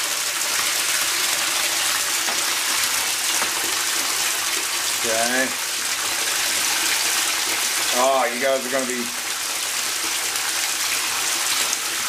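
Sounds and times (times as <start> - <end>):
water gushing into bathtub: 0.0 - 12.0.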